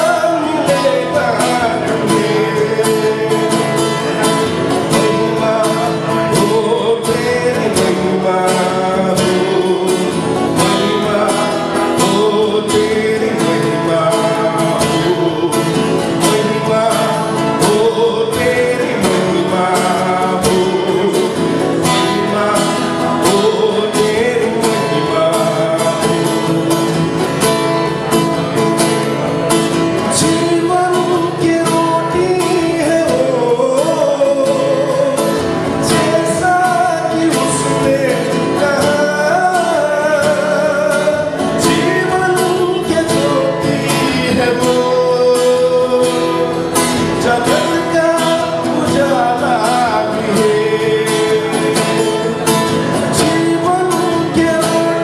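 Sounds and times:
man singing worship song: 0.0s - 26.9s, 30.0s - 55.0s
acoustic guitar strumming: 0.0s - 55.0s.

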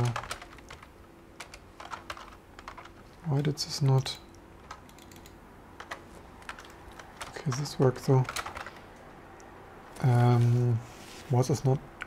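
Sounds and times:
computer keyboard keystrokes: 0.0s - 3.0s, 4.6s - 8.8s.

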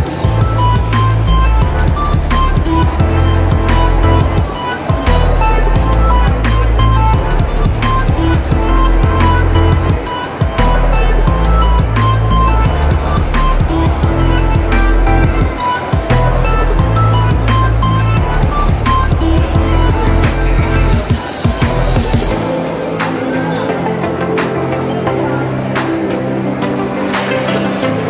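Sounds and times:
music with heavy bass beat: 0.0s - 28.0s.

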